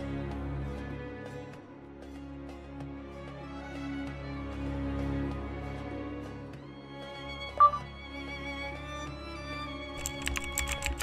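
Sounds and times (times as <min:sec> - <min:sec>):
background music: 0:00.0 - 0:11.0
computer keyboard typing: 0:10.0 - 0:11.0.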